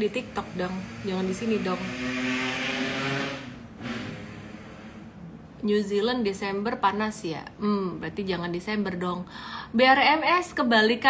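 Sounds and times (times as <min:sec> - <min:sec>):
woman speaking: 0:00.0 - 0:02.0, 0:05.6 - 0:11.0.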